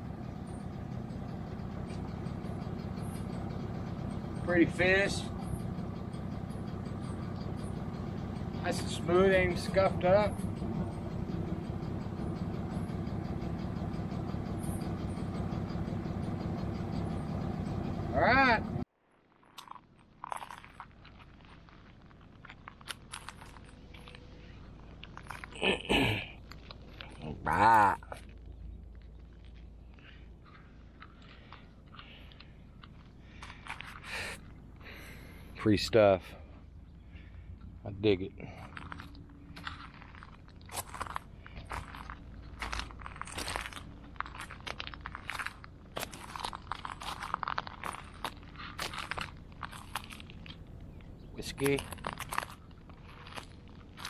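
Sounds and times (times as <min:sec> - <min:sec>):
footsteps crunching on gravel: 0:38.6 - 0:54.0.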